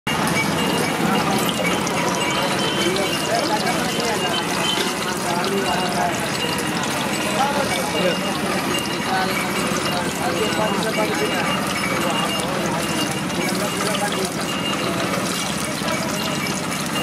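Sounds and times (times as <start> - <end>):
hand mixing wet batter: 0.1 - 17.0
indistinct voices: 0.1 - 17.0.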